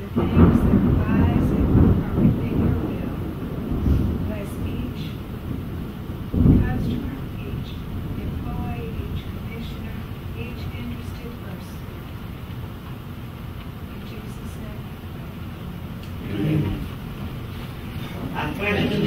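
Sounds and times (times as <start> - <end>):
person speaking a prayer: 0.0 - 3.2, 16.2 - 17.0, 18.0 - 19.0
low room rumble: 0.0 - 19.0.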